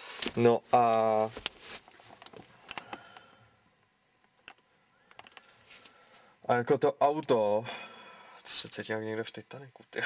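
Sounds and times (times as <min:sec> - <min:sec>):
handling rustle: 0:00.0 - 0:03.0.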